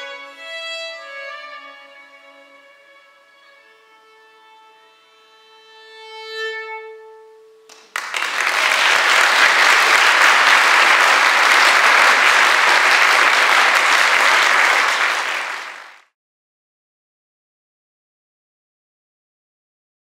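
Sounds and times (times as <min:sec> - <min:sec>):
audience applauding: 0:07.7 - 0:16.1.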